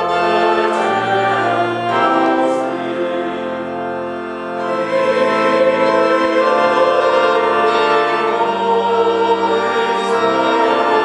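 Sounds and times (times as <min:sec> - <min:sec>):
church organ playing hymn: 0:00.0 - 0:11.0
voices singing: 0:00.0 - 0:11.0.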